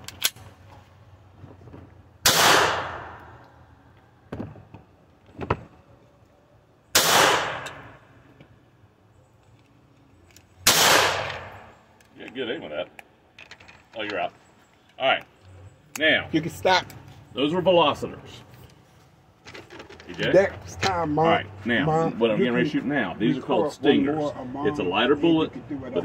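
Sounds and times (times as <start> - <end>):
gunshots with echo: 2.2 - 3.2, 7.0 - 7.9, 10.6 - 11.7.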